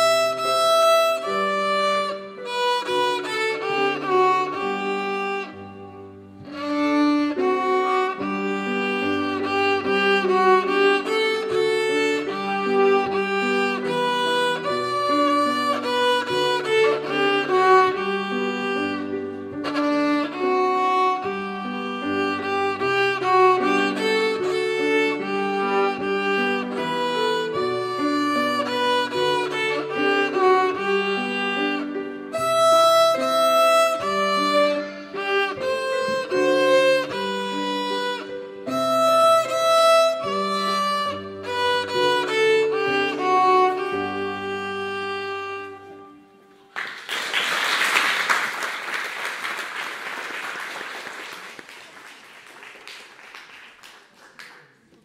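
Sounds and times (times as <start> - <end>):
violin melody: 0.0 - 46.8
piano chords: 0.0 - 47.1.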